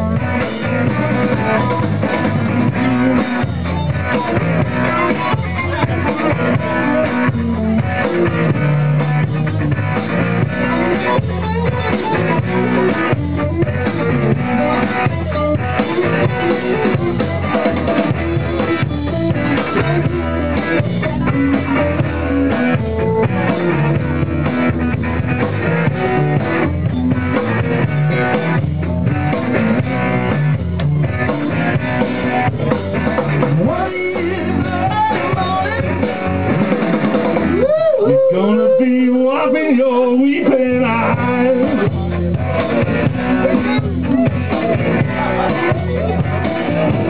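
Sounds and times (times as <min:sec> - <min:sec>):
drum kit: 0:00.0 - 0:38.8, 0:39.7 - 0:47.0
electric guitar: 0:00.0 - 0:47.0.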